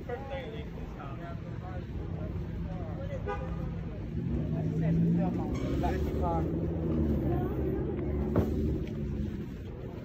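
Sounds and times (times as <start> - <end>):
faint talk of people: 0.0 - 10.0.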